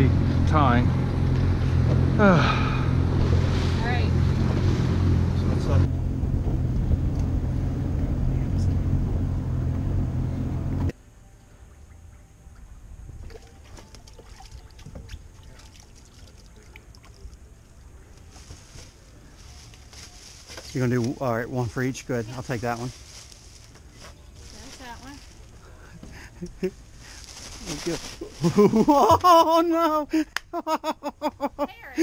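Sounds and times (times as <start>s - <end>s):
outboard motor humming: 0.0s - 10.9s
wind: 0.0s - 32.0s
water noise: 11.6s - 18.1s
faint clicks and rustles: 15.9s - 21.2s, 22.3s - 28.8s.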